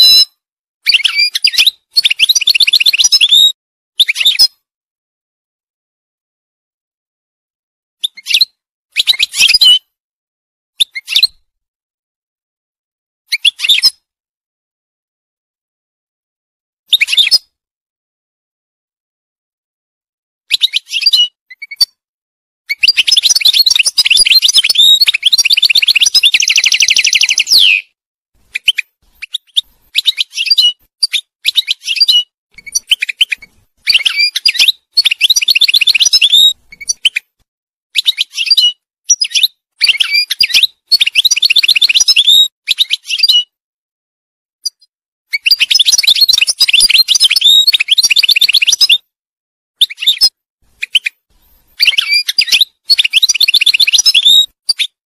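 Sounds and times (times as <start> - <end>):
goldfinch singing: 22.7 - 27.9, 28.5 - 37.2, 38.0 - 43.5, 45.4 - 49.0, 51.8 - 54.9.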